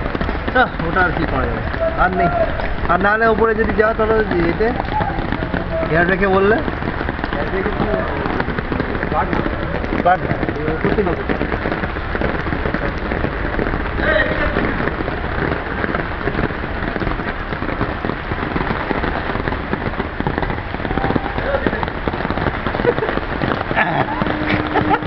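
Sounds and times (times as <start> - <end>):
heavy rain falling: 0.0 - 25.0.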